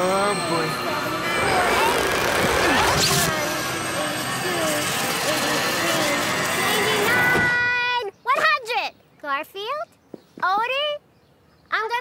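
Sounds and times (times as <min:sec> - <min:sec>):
bright sweep: 0:00.0 - 0:07.3.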